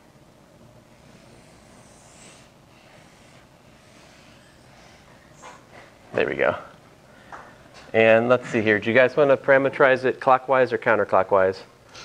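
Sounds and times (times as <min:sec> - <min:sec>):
low room hum: 0:00.0 - 0:12.0
marker drawing on whiteboard: 0:01.0 - 0:05.6.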